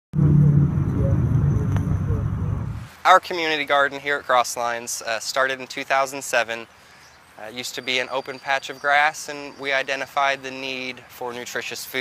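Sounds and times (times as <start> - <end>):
motor vehicle rumbling: 0.1 - 3.0.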